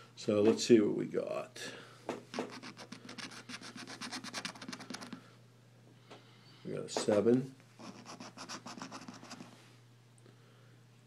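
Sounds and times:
coin scratching lottery ticket: 2.4s - 5.2s, 7.8s - 9.5s.

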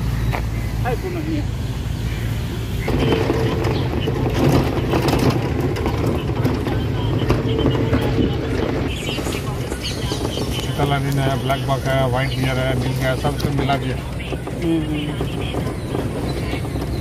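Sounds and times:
people's voices: 0.0s - 17.0s
vehicle running on road: 0.0s - 17.0s.

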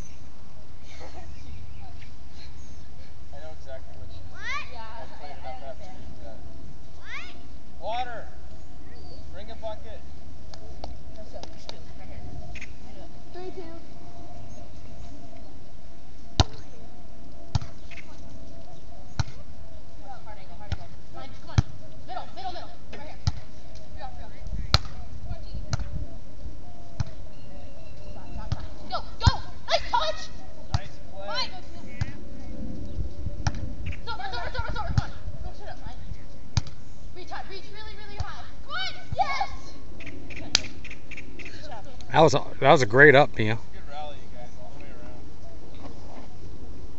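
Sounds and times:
players calling out: 42.1s - 43.6s.

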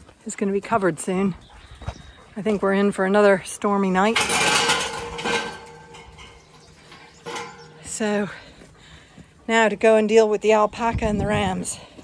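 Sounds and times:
sheep feeding at trough: 0.0s - 12.0s
light clattering and rustling: 4.0s - 9.4s.

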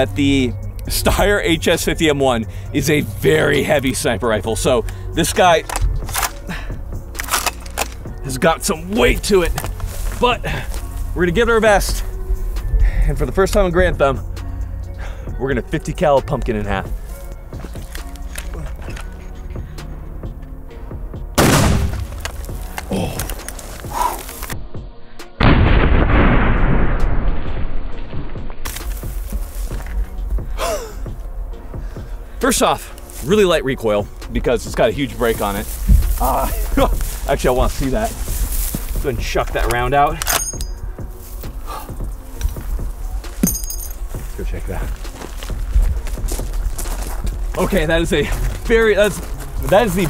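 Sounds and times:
background music: 0.0s - 50.0s
rifle and gear handling noise: 4.8s - 8.3s, 9.0s - 11.0s, 17.1s - 19.4s, 21.8s - 24.6s, 38.0s - 41.5s
sharp loud crack: 21.4s - 22.1s, 25.4s - 28.3s
slowed-down rifle shot boom: 25.4s - 28.6s.

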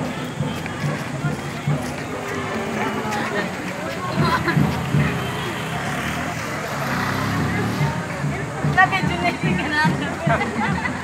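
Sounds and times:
teenagers chattering: 0.0s - 11.0s.

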